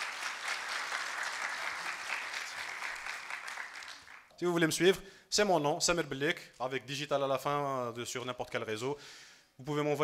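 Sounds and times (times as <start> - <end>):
audience applauding: 0.0 - 4.3.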